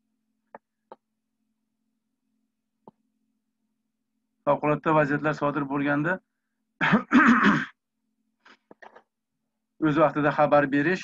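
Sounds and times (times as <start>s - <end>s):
man clearing his throat: 6.8s - 7.8s.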